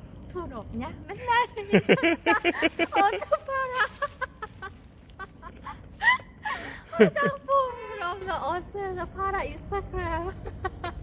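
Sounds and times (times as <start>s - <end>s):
woman laughing: 1.2s - 8.1s, 10.2s - 11.0s.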